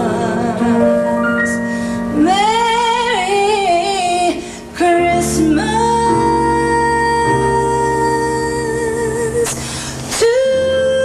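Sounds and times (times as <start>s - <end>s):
woman singing a slow ballad: 0.0s - 11.0s.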